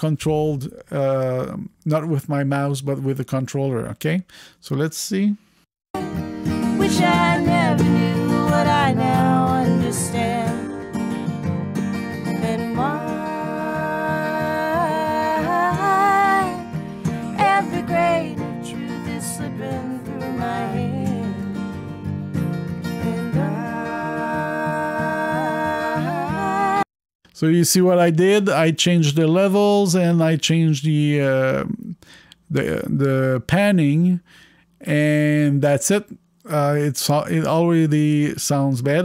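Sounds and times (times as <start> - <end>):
woman singing: 6.0 - 10.7, 12.3 - 21.4, 22.9 - 26.9
acoustic guitars: 6.0 - 26.8.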